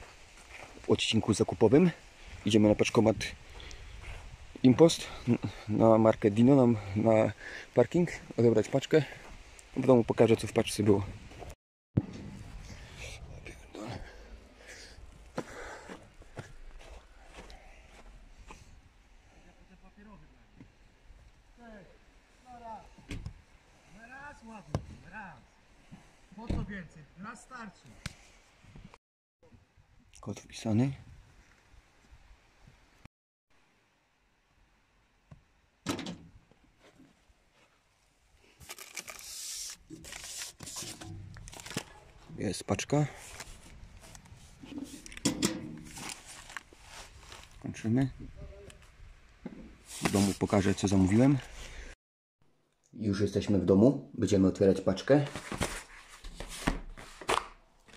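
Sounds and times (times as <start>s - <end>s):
footsteps on snow: 0.0s - 1.0s, 15.2s - 18.6s, 45.8s - 47.6s
cardboard parcel scraping metal: 38.8s - 42.0s.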